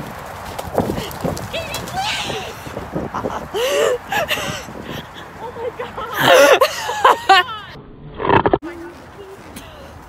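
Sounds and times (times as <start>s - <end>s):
horse hoofbeats on dirt: 0.0s - 2.6s.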